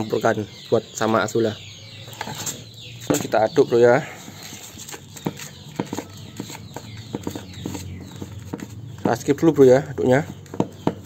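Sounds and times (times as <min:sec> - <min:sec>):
spoon scraping plastic basin: 0:04.4 - 0:09.5.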